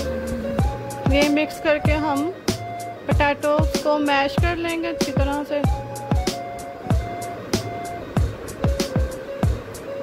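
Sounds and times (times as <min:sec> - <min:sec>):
sustained synth notes: 0:00.0 - 0:10.0.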